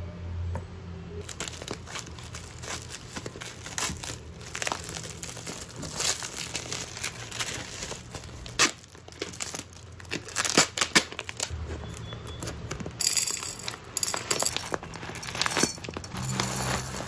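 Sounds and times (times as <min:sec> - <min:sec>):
plastic bag crinkling: 0:01.2 - 0:17.0
scissors cutting plastic: 0:01.2 - 0:17.0.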